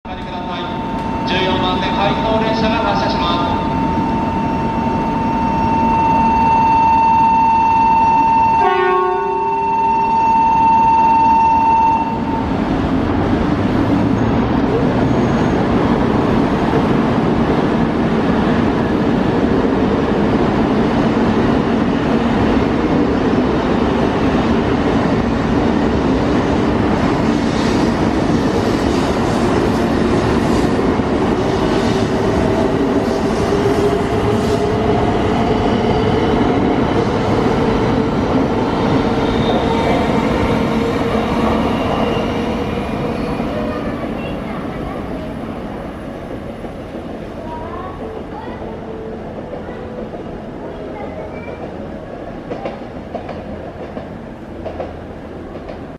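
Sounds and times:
train rumbling: 0.1 - 55.9
electronic warning tone: 0.4 - 12.5.

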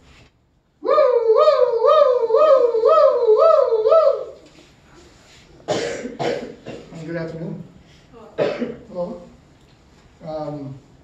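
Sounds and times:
person coughing: 5.7 - 7.1, 8.4 - 8.9.

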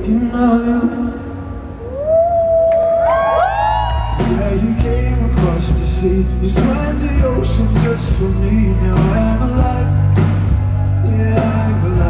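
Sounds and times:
live band music: 2.8 - 12.0
steady low bass: 4.1 - 12.0.

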